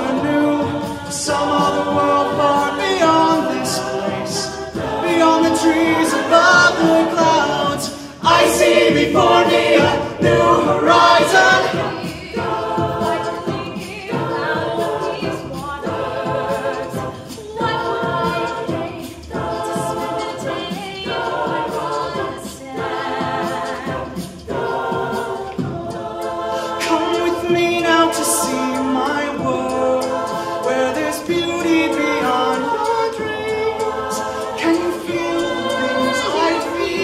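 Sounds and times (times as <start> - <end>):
a cappella group singing: 0.0 - 37.0
vocal percussion ticks: 0.0 - 37.0.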